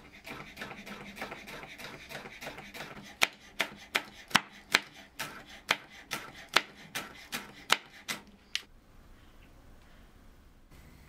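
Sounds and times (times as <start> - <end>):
knife chopping on cutting board: 0.3 - 8.3.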